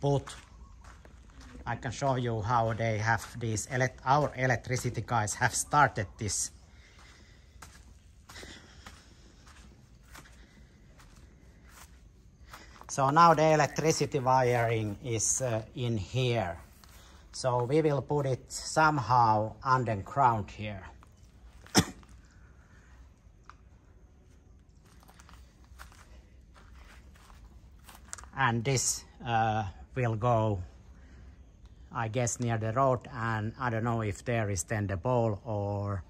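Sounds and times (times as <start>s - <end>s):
footsteps on grass: 0.0s - 22.3s, 24.0s - 29.2s
man coughing: 21.6s - 22.3s.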